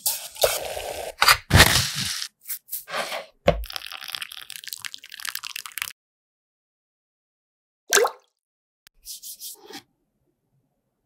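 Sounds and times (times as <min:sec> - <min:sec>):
pouring into pot of water: 0:03.6 - 0:06.0.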